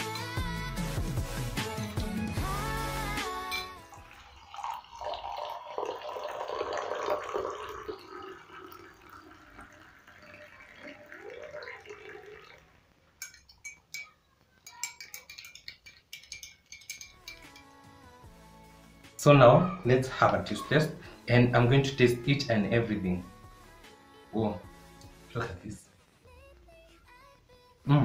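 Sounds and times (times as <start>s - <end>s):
spoon clinking against a mug: 3.4s - 10.4s, 13.2s - 17.8s
coffee pouring into a mug: 3.5s - 14.2s.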